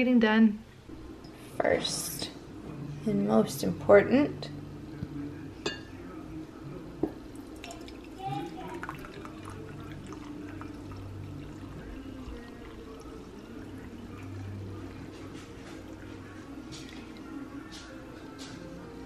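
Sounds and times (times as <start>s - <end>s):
light ceramic clinks: 5.6s - 5.9s
liquid trickling into a mug: 7.3s - 17.9s.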